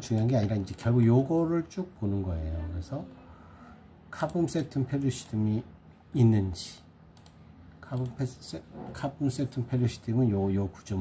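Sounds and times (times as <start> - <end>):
man talking: 0.0 - 3.1, 4.1 - 6.9, 7.8 - 11.0.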